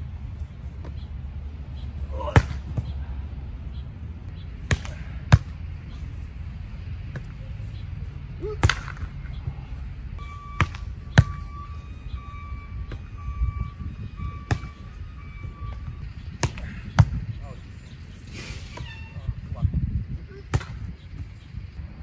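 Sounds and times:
volleyball hand slaps: 8.6s - 9.1s.

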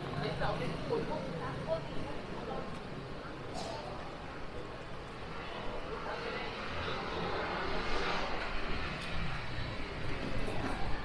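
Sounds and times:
city street traffic: 0.0s - 11.0s.

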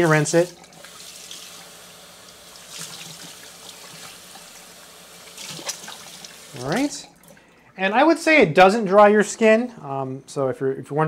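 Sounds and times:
faucet running into sink: 0.0s - 7.6s
water splashing off hands: 5.3s - 7.4s.

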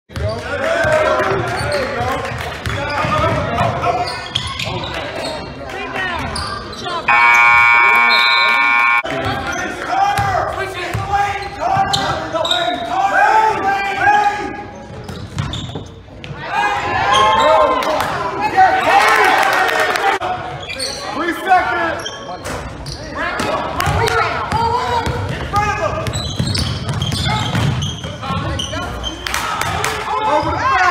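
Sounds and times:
people calling out: 7.1s - 9.0s
scoreboard horn: 7.1s - 9.1s.

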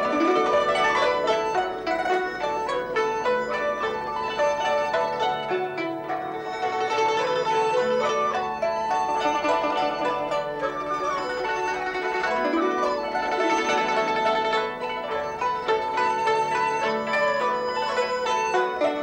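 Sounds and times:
plucked string instrumental music: 0.0s - 19.0s.

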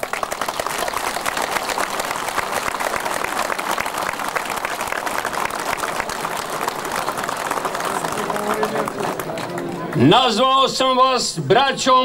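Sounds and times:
crowd applauding: 0.0s - 10.7s.

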